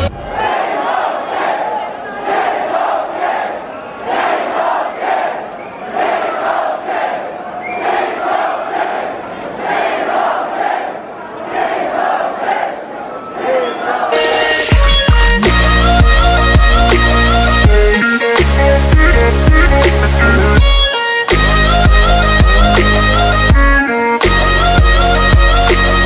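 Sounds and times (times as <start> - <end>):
crowd chanting: 0.0 - 14.8.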